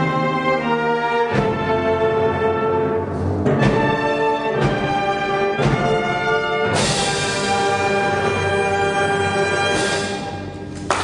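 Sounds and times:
wind band playing chords: 0:00.0 - 0:11.0
drum strikes: 0:01.3 - 0:01.9, 0:03.4 - 0:07.6.

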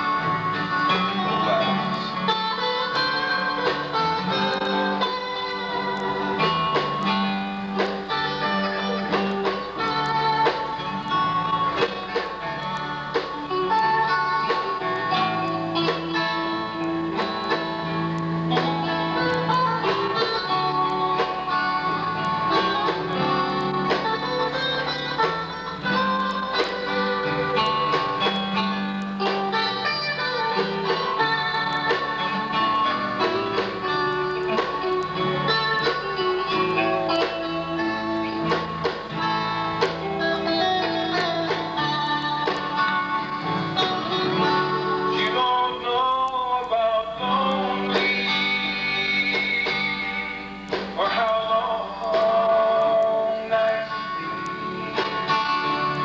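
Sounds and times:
electric bass line: 0:00.0 - 0:45.9
acoustic guitars playing: 0:00.0 - 0:56.0.

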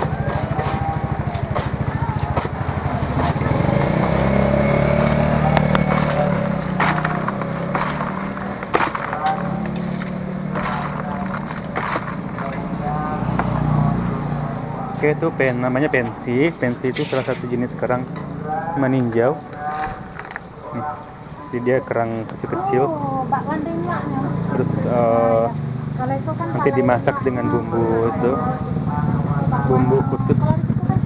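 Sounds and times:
background voices: 0:00.0 - 0:31.0.

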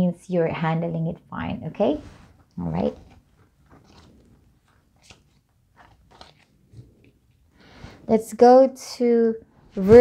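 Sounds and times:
cards rustling and tapping: 0:02.9 - 0:07.4.

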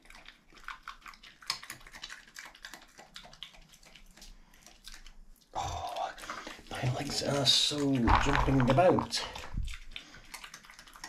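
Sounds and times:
badger chewing food: 0:00.0 - 0:11.0.

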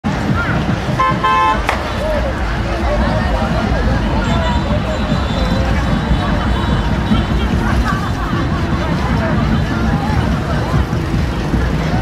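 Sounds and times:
street crowd babble: 0:00.0 - 0:12.0
vehicle horn beeps: 0:01.0 - 0:01.6.

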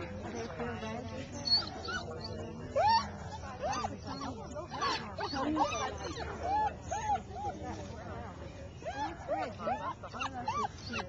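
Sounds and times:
murmur of people talking: 0:00.0 - 0:11.0
dog whining: 0:01.4 - 0:07.6.

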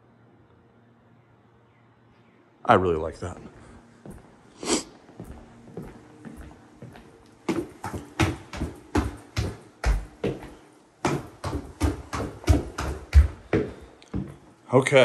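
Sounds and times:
footsteps on wooden stairs: 0:05.1 - 0:14.6.

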